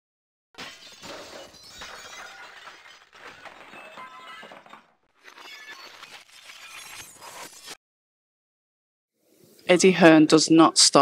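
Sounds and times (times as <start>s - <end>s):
glass smash: 0.6s - 4.9s
small pieces clinking: 0.6s - 7.0s.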